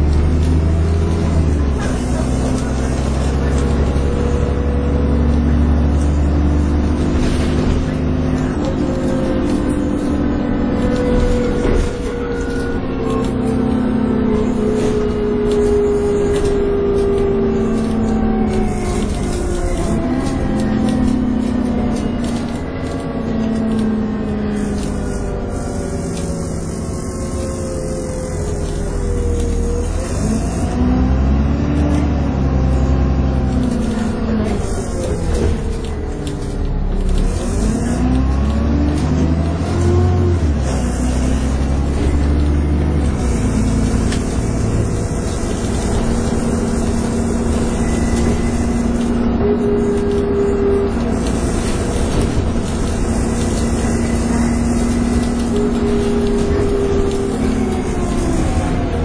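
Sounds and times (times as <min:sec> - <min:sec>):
bus diesel engine whining: 0:00.0 - 0:59.0.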